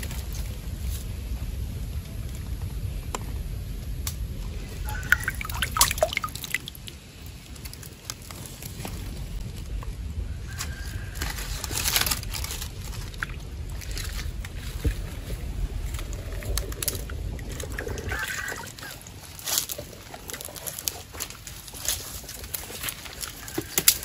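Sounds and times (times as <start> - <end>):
low rumble: 0.0 - 7.6, 8.4 - 23.2
rustling leaves and grass: 0.0 - 24.0
hands splashing in a puddle: 4.9 - 7.0.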